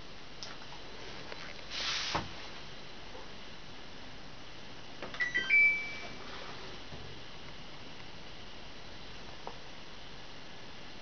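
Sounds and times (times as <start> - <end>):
electronic power-on chime: 5.2 - 6.2.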